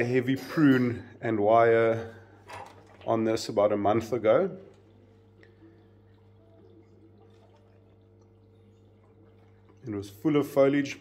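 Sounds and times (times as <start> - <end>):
electrical hum: 0.0 - 11.0
water trickling and dripping: 4.2 - 10.4.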